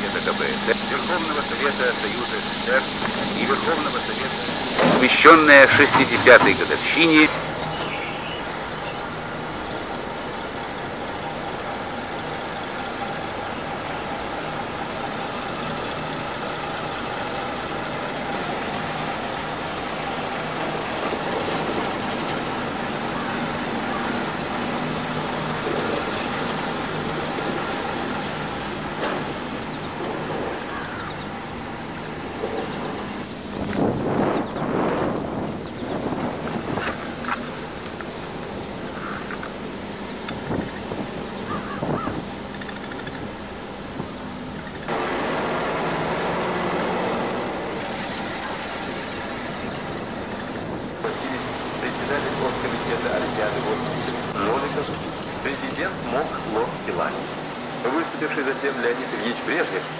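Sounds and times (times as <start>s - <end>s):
bus diesel engine running: 0.0s - 59.9s.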